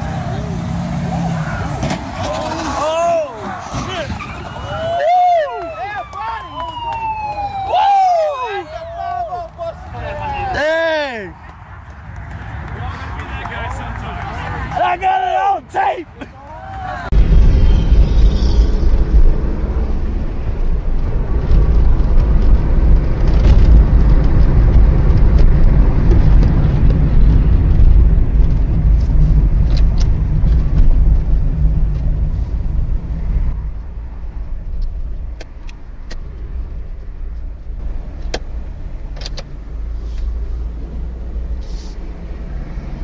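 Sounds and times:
car engine and road noise: 0:00.0 - 0:43.0.

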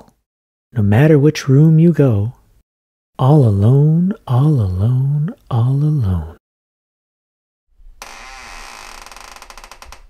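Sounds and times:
drawn-out creak: 0:08.0 - 0:10.0.

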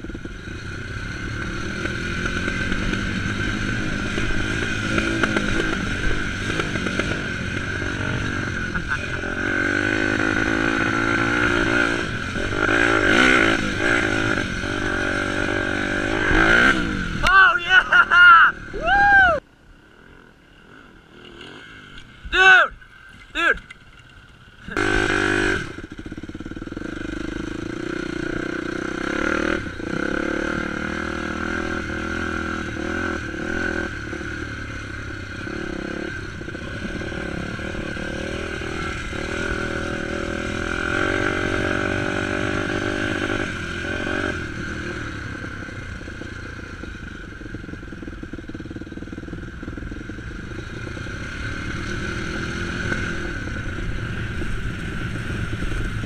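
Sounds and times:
dirt bike engine revving: 0:00.0 - 0:22.2, 0:24.6 - 0:56.0.

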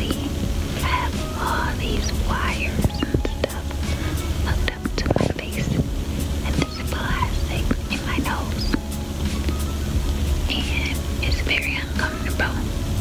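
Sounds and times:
woman whispering: 0:00.0 - 0:03.7, 0:04.5 - 0:05.8, 0:06.4 - 0:08.8, 0:10.5 - 0:12.7.

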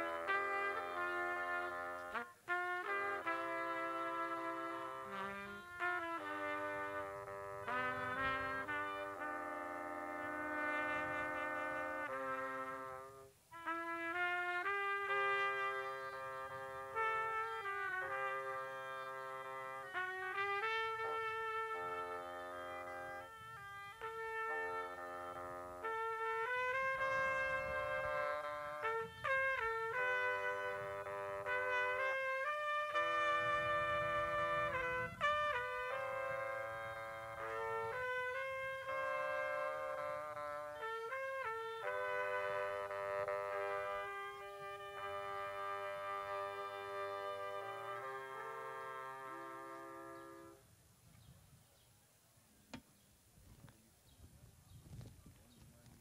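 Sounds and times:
wind trio playing held notes: 0:00.0 - 0:50.8.

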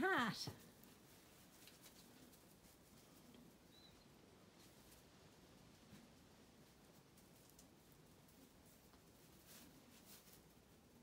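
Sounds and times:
faint high chirp: 0:03.7 - 0:04.2.

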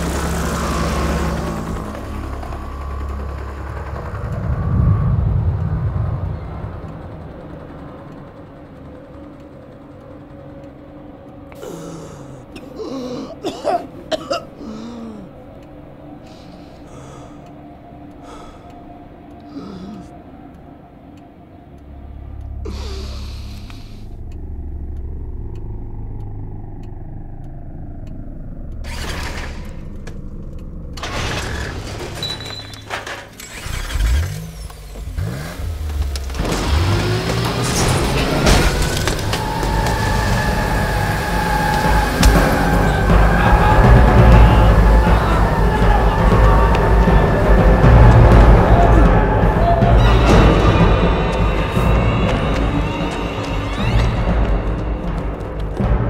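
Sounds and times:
deep low rumble: 0:00.0 - 0:10.5, 0:21.6 - 0:32.0, 0:38.0 - 0:56.0
bus driving past: 0:00.0 - 0:11.5, 0:33.6 - 0:56.0
dark low music score: 0:00.0 - 0:56.0.

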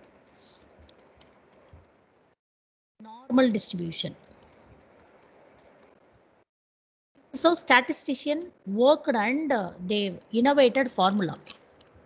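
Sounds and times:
keyboard typing clicks: 0:00.0 - 0:02.1, 0:04.2 - 0:06.0.

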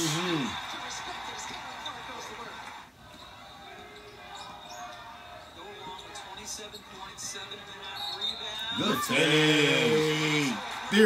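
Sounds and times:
arena ambience: 0:00.0 - 0:11.0.

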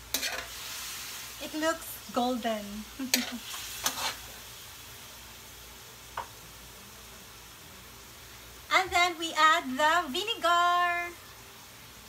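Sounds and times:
meat sizzling in a wok: 0:00.0 - 0:12.0.

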